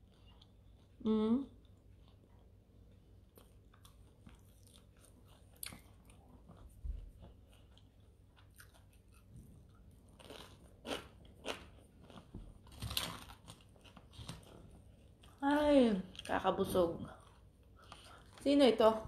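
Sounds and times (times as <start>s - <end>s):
person chewing crusty bread: 1.6s - 15.5s, 17.1s - 18.4s.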